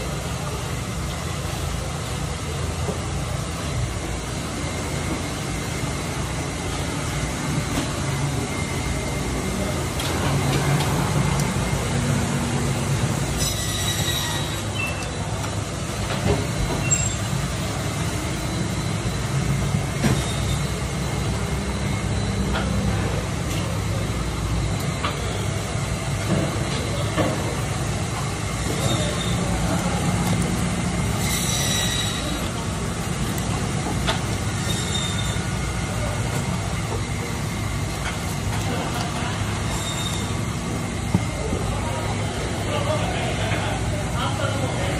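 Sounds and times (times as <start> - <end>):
mechanical hum: 0.0 - 44.9
high squeals: 13.2 - 15.4, 16.7 - 21.0, 28.6 - 29.6, 31.1 - 32.6, 34.5 - 35.7, 39.6 - 40.6.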